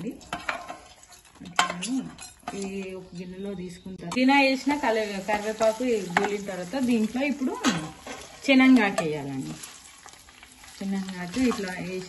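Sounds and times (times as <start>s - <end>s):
leaves sizzling in a pan: 0.0s - 12.0s
spatula scraping and tapping pan: 0.2s - 3.1s, 5.3s - 10.2s.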